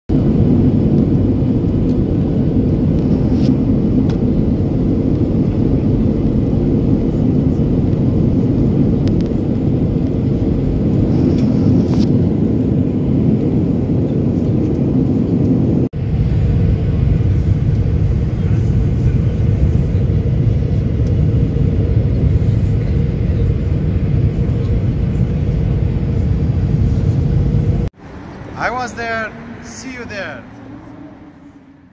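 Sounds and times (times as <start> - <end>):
airliner cabin drone: 0.1 - 31.9
low hum: 0.1 - 31.9.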